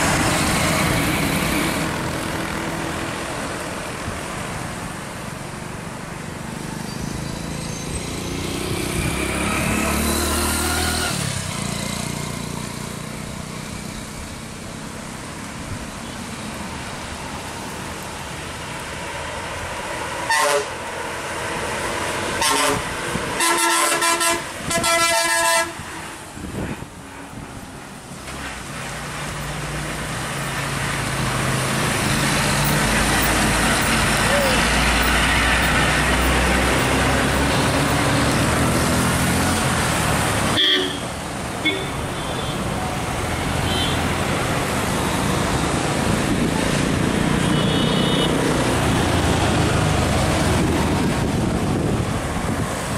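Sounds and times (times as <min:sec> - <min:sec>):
heavy diesel bus engine: 0:00.0 - 0:52.9
bus horn blasts: 0:20.2 - 0:20.8, 0:22.4 - 0:25.9, 0:40.5 - 0:42.6, 0:43.6 - 0:44.0, 0:47.4 - 0:48.4.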